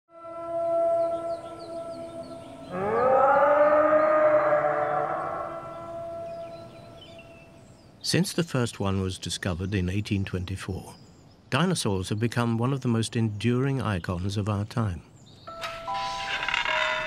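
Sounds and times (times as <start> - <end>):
held chord of steady tones: 0.1 - 3.8
long rising wail: 0.1 - 6.5.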